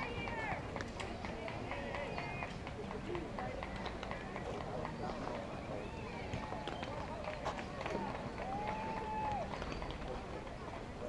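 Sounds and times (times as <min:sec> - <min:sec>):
distant shouting and chatter: 0:00.0 - 0:11.0.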